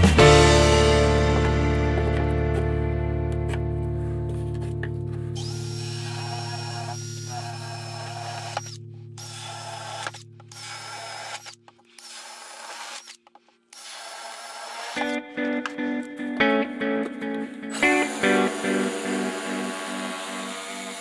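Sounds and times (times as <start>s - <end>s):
held music chord: 0.0s - 5.4s, 15.2s - 21.0s
cordless drill boring acrylic: 5.4s - 15.1s, 17.8s - 21.0s.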